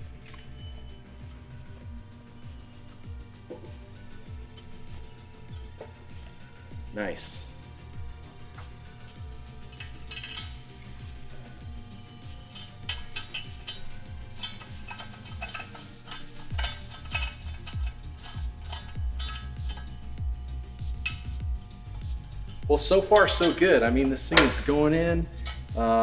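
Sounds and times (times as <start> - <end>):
background music with steady beat: 0.0 - 26.0
hex key clinking on screws: 9.7 - 10.7.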